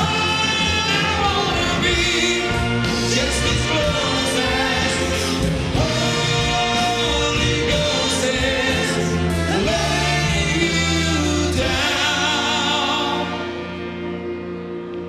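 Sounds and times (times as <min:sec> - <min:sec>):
brass and percussion band: 0:00.0 - 0:13.3
men singing into microphones: 0:00.0 - 0:13.8.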